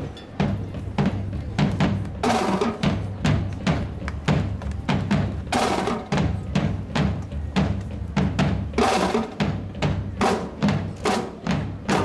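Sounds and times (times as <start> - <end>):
marching band percussion strikes: 0.1 - 12.0.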